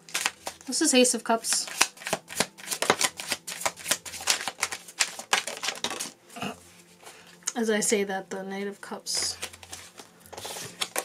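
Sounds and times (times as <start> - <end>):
cards being shuffled: 0.0 - 0.8, 1.4 - 6.2, 9.2 - 11.0.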